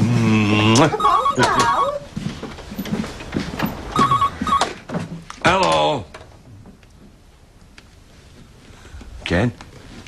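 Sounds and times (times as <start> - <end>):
telephone warbling ring: 1.0 - 2.1, 4.0 - 4.7.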